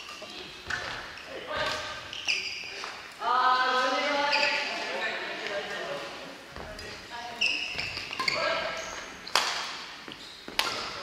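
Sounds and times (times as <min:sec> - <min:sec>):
voices echoing in a hall: 0:00.0 - 0:11.0
shoes squeaking on wooden floor: 0:00.7 - 0:02.9, 0:06.5 - 0:09.4, 0:10.0 - 0:11.0
racket hitting shuttlecock: 0:09.2 - 0:09.9, 0:10.5 - 0:11.0.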